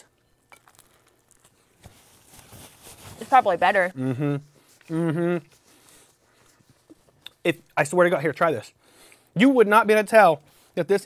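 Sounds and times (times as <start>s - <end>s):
chewing toast: 0.4s - 1.8s.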